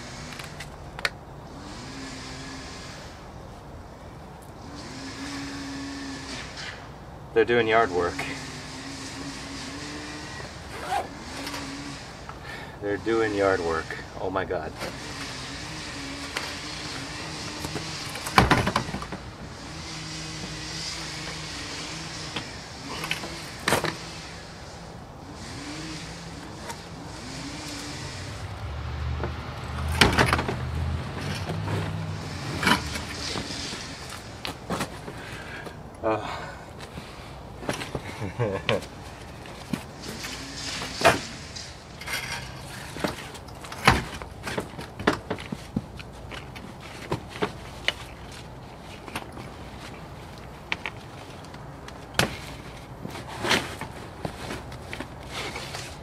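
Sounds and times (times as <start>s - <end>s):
small engine droning: 1.4s - 3.3s, 4.6s - 6.9s, 7.8s - 34.5s.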